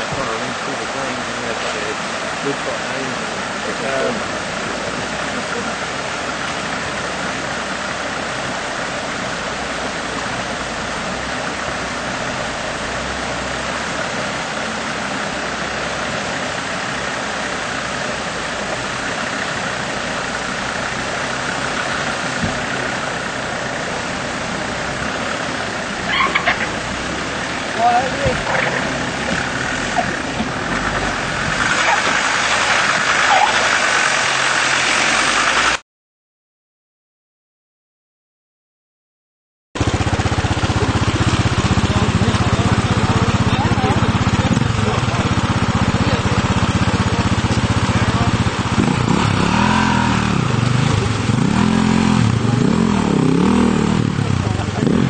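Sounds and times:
vehicle engine running: 0.0 - 35.8, 39.8 - 55.0
water rushing around wheels: 0.0 - 35.8, 39.8 - 55.0.

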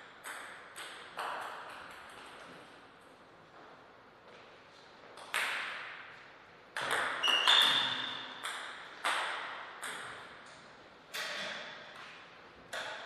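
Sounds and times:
table tennis ball pings: 6.8 - 10.4.

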